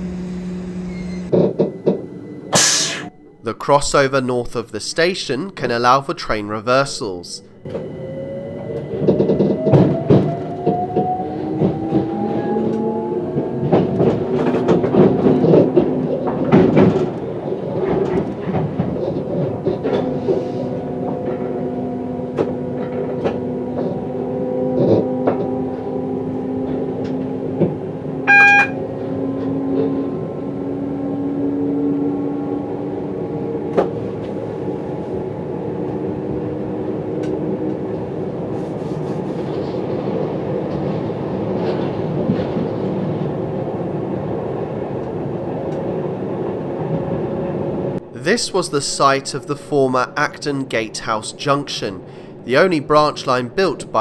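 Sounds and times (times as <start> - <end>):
traction motor whine: 0.0 - 2.5
train rumble: 0.0 - 54.0
high-pitched tone: 0.9 - 5.9, 28.3 - 28.8
wheels clicking over rail joints: 9.0 - 21.6.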